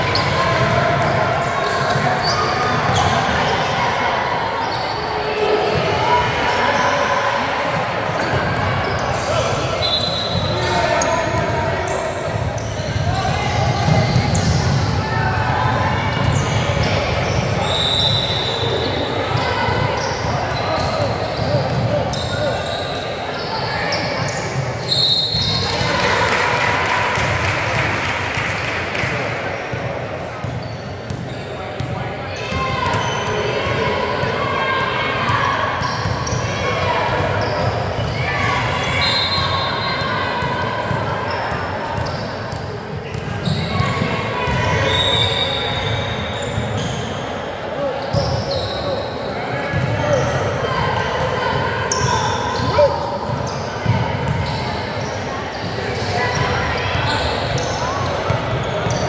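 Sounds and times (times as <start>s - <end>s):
voices echoing in hall: 0.0s - 59.0s.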